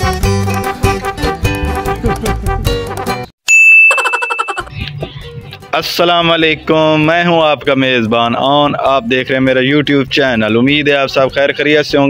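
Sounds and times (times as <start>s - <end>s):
bright ringing ding: 3.5s - 4.7s.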